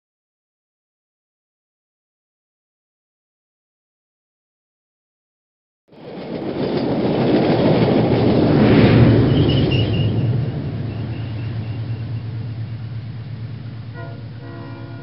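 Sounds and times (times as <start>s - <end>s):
train passing with rumbling rush: 5.9s - 15.0s.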